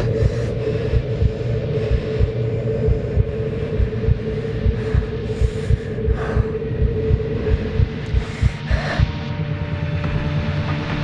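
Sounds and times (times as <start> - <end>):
heartbeat-like low pulses: 0.0 - 10.3
low rumbling drone: 0.0 - 11.0.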